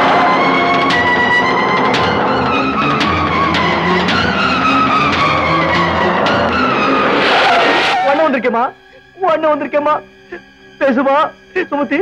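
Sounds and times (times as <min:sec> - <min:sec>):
car tyres skidding: 0:00.0 - 0:08.4
dramatic film score: 0:00.0 - 0:11.8.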